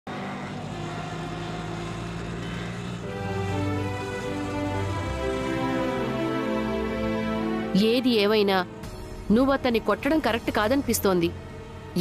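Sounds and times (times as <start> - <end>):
music of sustained notes: 1.0 - 12.0.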